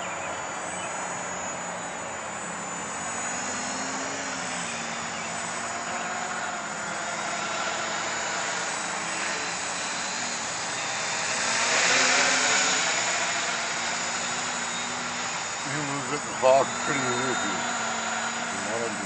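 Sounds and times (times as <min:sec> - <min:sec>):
quadcopter propellers buzzing: 0:00.0 - 0:19.0.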